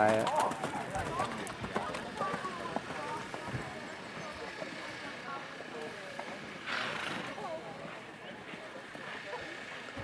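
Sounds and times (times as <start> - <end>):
distant indistinct voices: 0.0 - 10.0.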